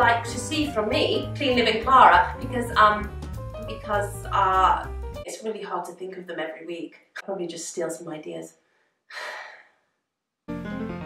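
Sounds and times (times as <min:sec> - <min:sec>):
music with bass and plucked notes: 0:00.0 - 0:05.2, 0:10.5 - 0:11.0
woman sighing: 0:09.1 - 0:09.8.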